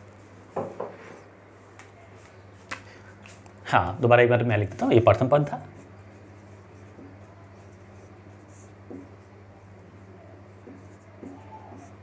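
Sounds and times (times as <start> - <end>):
low electrical hum: 0.0 - 12.0
marker scratching on whiteboard: 5.8 - 12.0
marker squeak: 11.2 - 12.0.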